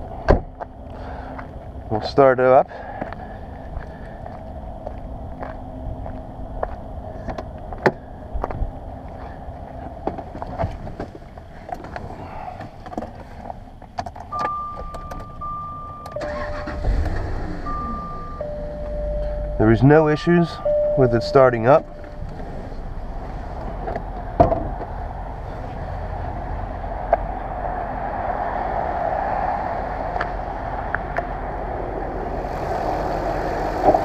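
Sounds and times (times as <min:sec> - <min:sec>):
car engine starting and idling: 0:02.7 - 0:27.9, 0:28.9 - 0:34.0
car warning chimes: 0:14.3 - 0:23.0.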